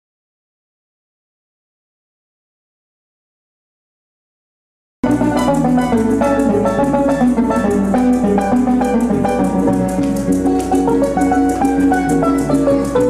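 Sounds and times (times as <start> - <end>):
maracas shaking: 5.0 - 13.0
plucked string music: 5.0 - 13.0.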